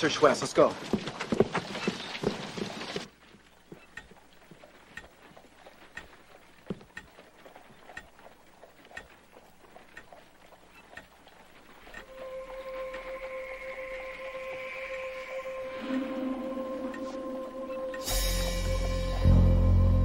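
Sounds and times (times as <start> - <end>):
clock ticking: 3.8 - 4.2, 4.9 - 5.2, 5.9 - 8.2, 8.9 - 9.2, 9.9 - 10.1, 10.7 - 11.1, 11.8 - 13.3, 15.4 - 19.3
sustained music tone: 11.8 - 20.0.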